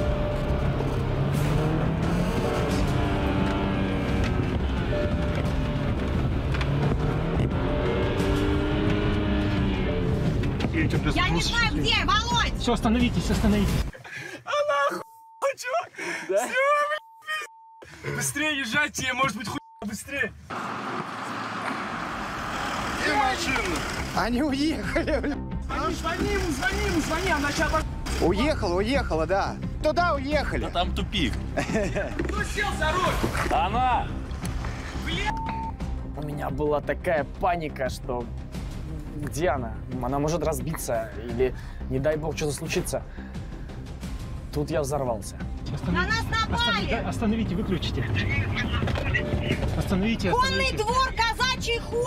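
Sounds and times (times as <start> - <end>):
car driving off: 0.0 - 11.6, 20.5 - 28.7, 46.8 - 50.7
car engine and road noise: 0.0 - 14.0, 18.0 - 52.0.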